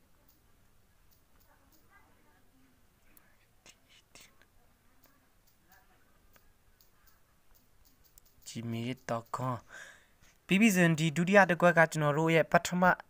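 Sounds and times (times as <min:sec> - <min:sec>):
faint clicks: 0:00.1 - 0:02.0, 0:03.0 - 0:10.5
soft whispery voice: 0:01.4 - 0:07.4
person speaking loudly: 0:10.5 - 0:13.0.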